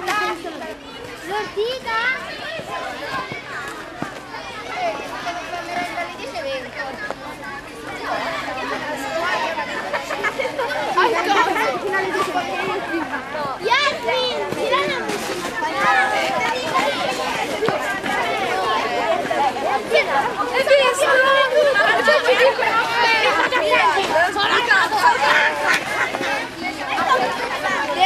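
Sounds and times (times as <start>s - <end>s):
children talking and calling out: 0.0s - 28.0s.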